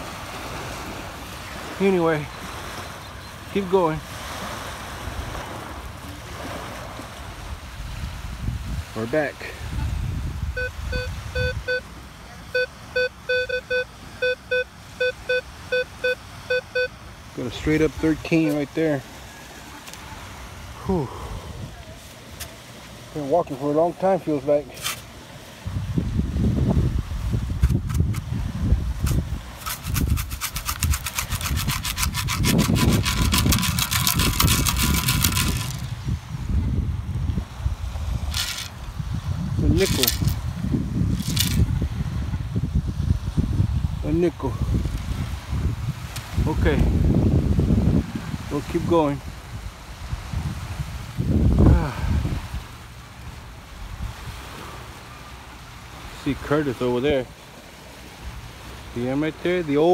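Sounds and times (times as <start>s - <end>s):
metal scoop digging into sand: 24.7s - 25.1s, 29.0s - 35.8s, 39.8s - 40.4s
sand rattling through wire mesh: 29.0s - 35.9s, 39.7s - 40.4s.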